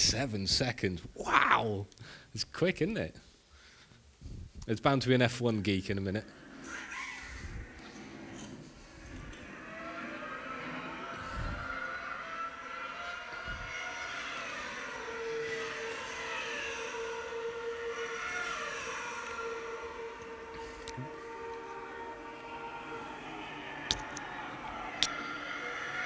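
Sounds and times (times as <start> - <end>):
racing car engines: 6.0 - 26.0.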